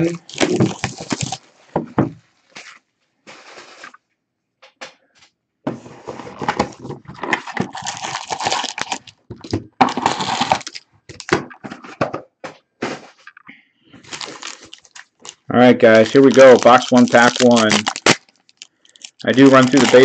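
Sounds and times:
foil packs crinkling: 0.0 - 1.4, 6.4 - 11.6, 14.0 - 20.0.

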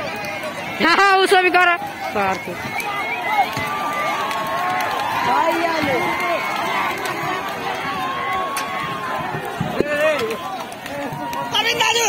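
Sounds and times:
long drawn-out shout: 0.0 - 12.0.

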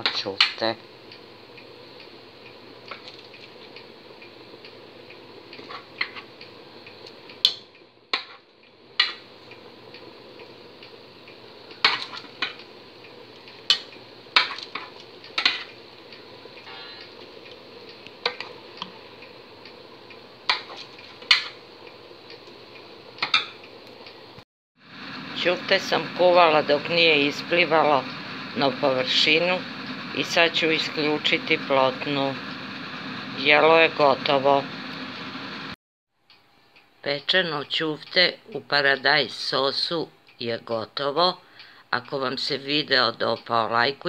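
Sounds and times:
bubbling sauce hiss: 0.8 - 35.8.

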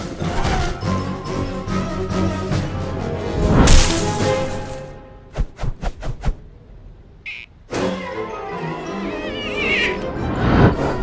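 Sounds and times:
film score: 0.0 - 11.0.

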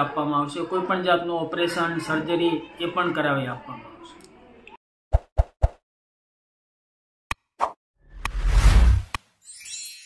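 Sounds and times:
whoosh: 8.1 - 9.2.

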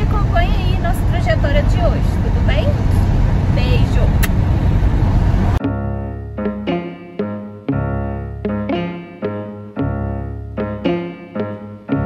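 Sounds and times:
car cabin road and engine rumble: 0.0 - 5.6
single click: 4.2 - 4.4.

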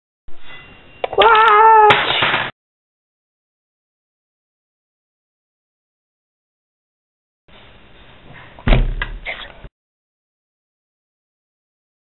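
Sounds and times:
loud heavy thump: 8.6 - 9.2.

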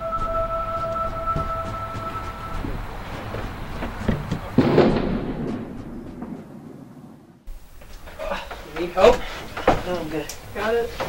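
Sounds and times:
two-note drone: 0.0 - 4.1
low rumble: 0.0 - 7.0.

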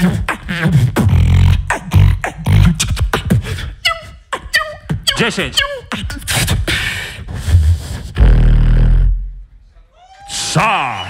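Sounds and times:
person beatboxing: 0.0 - 9.3.

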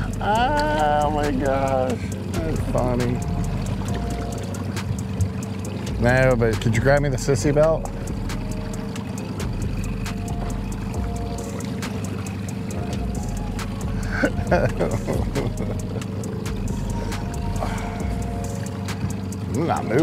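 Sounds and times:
voices: 0.0 - 8.0, 13.7 - 20.0
outboard motor humming: 0.0 - 20.0.

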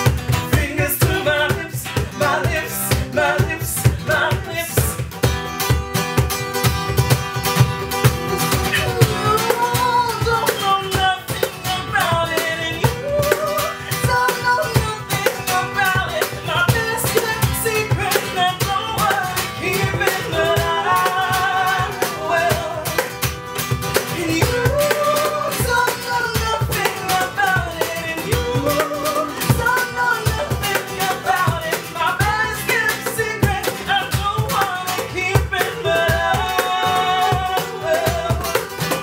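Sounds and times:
person singing: 0.0 - 5.1, 8.1 - 23.3, 23.9 - 39.0
acoustic guitar strummed: 0.0 - 39.0
cajon slapped: 0.0 - 39.0
voices singing together: 0.4 - 5.1, 8.2 - 39.0.

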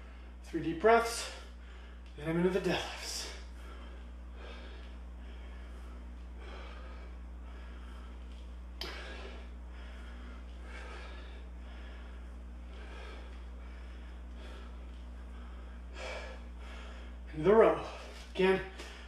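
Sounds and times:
steady low hum: 0.0 - 19.0
man breathing hard: 1.1 - 2.2, 2.8 - 19.0.

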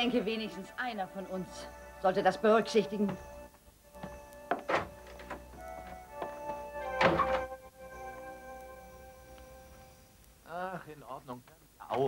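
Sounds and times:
background music chords: 0.0 - 10.5
door shutting with thud: 4.0 - 5.5, 6.9 - 7.5.

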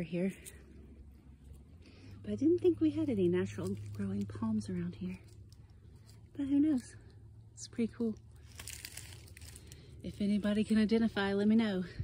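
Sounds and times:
dry leaves and grass rustling: 0.0 - 12.0.

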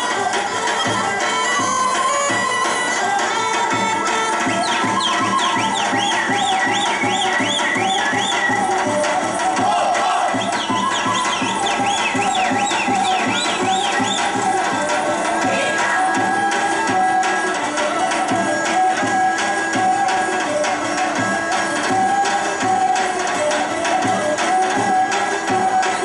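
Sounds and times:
folk dance music: 0.0 - 26.0
quick steady drum beat: 3.7 - 16.0.

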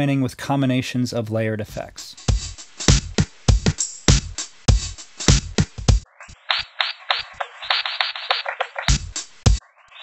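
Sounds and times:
filtered breakbeat drum loop: 2.2 - 10.0.

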